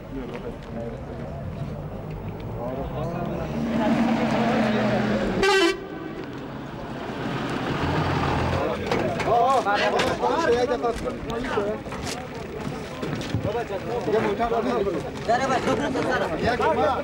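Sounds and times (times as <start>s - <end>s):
vehicle horn toot: 5.4s - 6.2s
murmur of men's voices: 8.2s - 17.0s.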